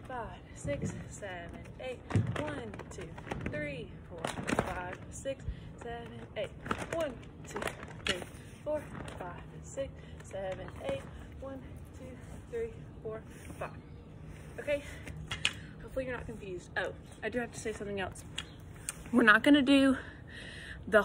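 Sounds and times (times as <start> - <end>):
woman's wordless singing: 0.0 - 13.8.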